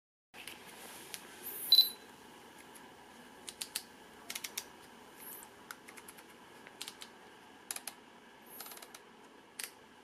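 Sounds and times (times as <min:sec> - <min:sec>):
camera double beep: 0:01.6 - 0:02.0.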